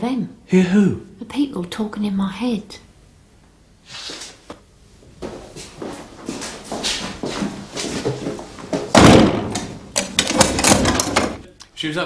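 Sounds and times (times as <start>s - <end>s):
cell door slamming shut: 8.9s - 11.4s.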